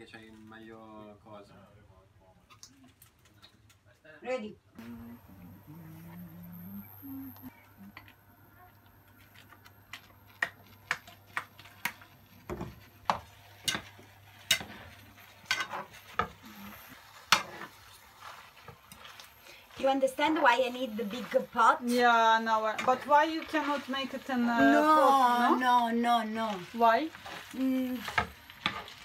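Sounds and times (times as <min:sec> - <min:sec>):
low steady hum: 0:04.8 - 0:28.9
metal fork scraping a pan: 0:13.1 - 0:19.3, 0:26.4 - 0:29.0.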